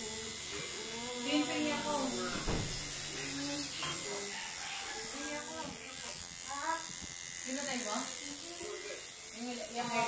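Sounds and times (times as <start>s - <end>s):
tattoo machine buzzing: 0.0s - 10.0s.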